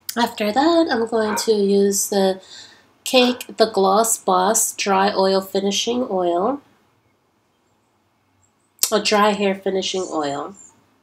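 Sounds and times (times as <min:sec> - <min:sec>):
woman speaking: 0:00.1 - 0:06.6, 0:08.8 - 0:10.7.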